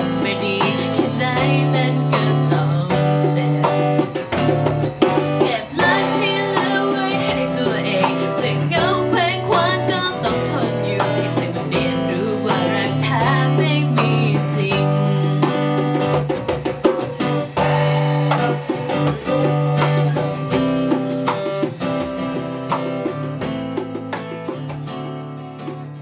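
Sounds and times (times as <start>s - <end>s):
acoustic guitar strumming: 0.0s - 26.0s
hand drum beats: 0.0s - 26.0s.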